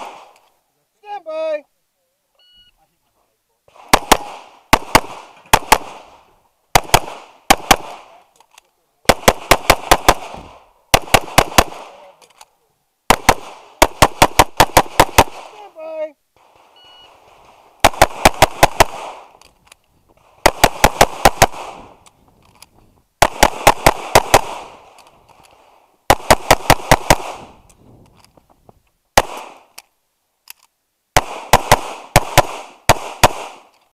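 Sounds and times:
pistol shots with echo: 0:03.8 - 0:06.2, 0:06.8 - 0:08.2, 0:09.1 - 0:12.1, 0:13.1 - 0:15.6, 0:17.8 - 0:19.3, 0:20.4 - 0:22.0, 0:23.2 - 0:24.8, 0:26.1 - 0:27.6, 0:29.2 - 0:29.7, 0:31.2 - 0:33.7.

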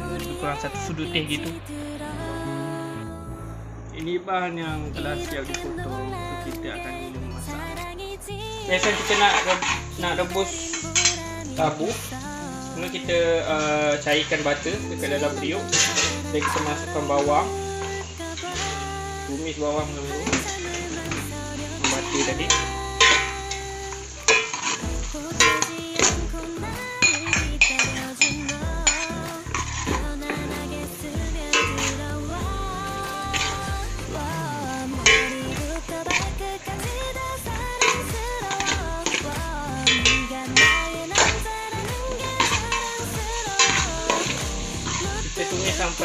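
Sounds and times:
background music with steady beat: 0:00.0 - 0:46.0
light sizzle: 0:05.1 - 0:46.0.

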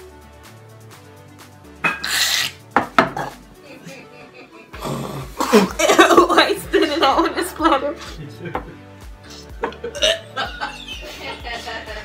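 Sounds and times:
person gagging: 0:04.8 - 0:06.3, 0:09.6 - 0:10.4.

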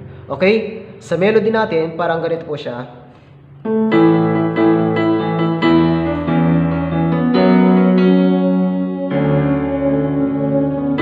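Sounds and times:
keyboard playing piano melody: 0:03.6 - 0:11.0.

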